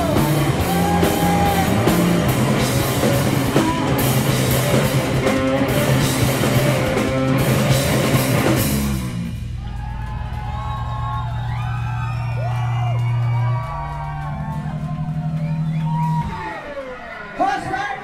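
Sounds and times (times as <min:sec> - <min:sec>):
heavy rock band playing: 0:00.0 - 0:17.8.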